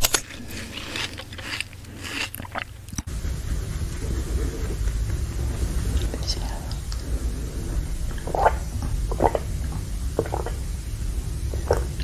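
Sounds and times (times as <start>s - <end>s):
low rumble: 3.0s - 12.0s
woman whispering: 5.9s - 6.9s.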